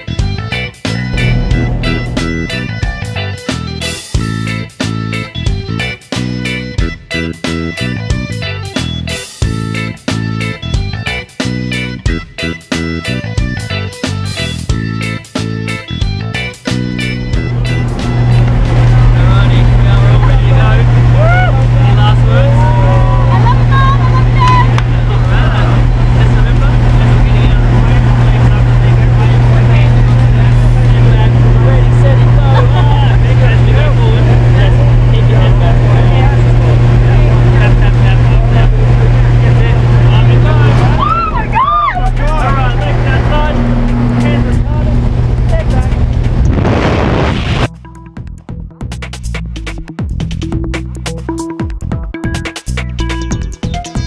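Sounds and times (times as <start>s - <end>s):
propeller aircraft engine drone: 0.9s - 4.0s, 16.9s - 47.7s
voices shouting: 41.0s - 42.6s.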